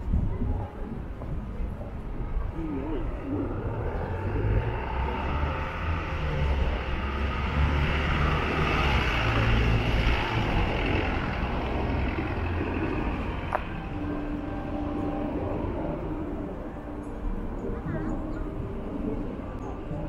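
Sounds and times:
passing vehicle rumble: 0.0 - 20.0.

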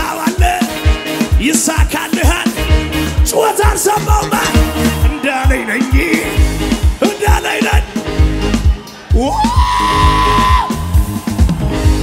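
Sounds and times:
gospel band music: 0.0 - 12.0.

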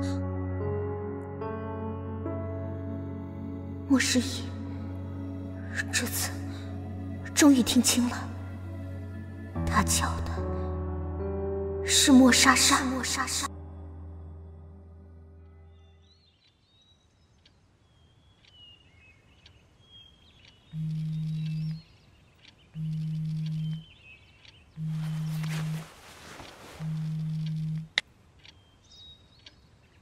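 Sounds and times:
bird chirps: 15.7 - 30.0
phone vibrating on wooden table: 20.8 - 21.8, 22.8 - 23.8, 24.8 - 25.9, 26.8 - 28.0.

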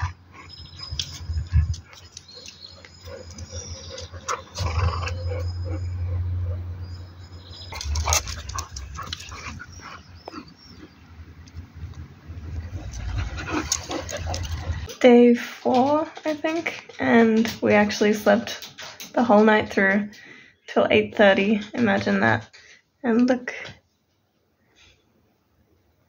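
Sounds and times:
dogs growling in play: 0.0 - 11.3, 12.3 - 14.9.

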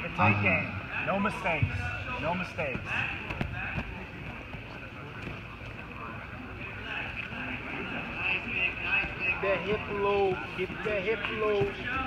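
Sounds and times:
steady background din: 0.0 - 12.0.

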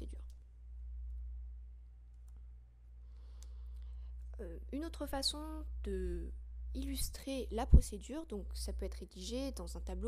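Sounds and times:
low hum: 0.0 - 10.0
soft breath: 3.0 - 4.3.

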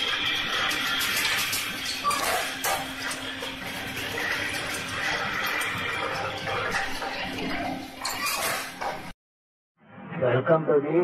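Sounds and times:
machinery clattering and clinking: 0.0 - 9.2.

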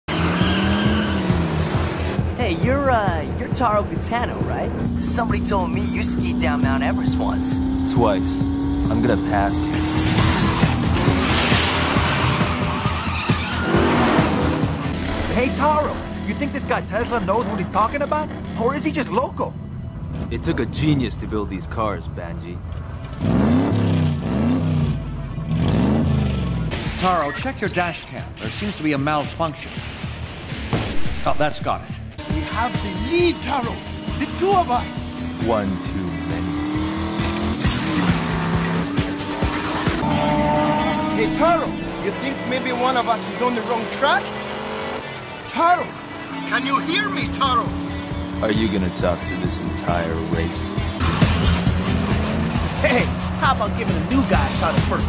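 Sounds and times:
race car engine running: 0.1 - 19.2, 32.2 - 55.0
tyres skidding: 0.1 - 30.2, 32.1 - 55.0
tyre squeal: 10.1 - 14.4
music with steady beat: 46.7 - 55.0.

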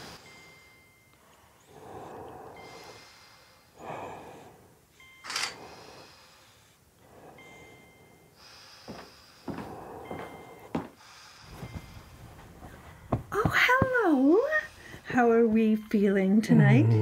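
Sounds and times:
soft breathing: 0.0 - 15.5
patient monitor beeping: 0.1 - 3.1, 3.8 - 6.2, 7.1 - 17.0
soft knocks: 11.5 - 14.2.

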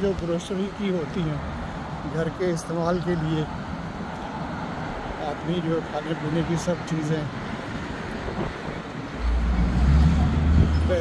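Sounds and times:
heavy vehicle rumble: 0.0 - 11.0
street traffic noise: 0.0 - 11.0.

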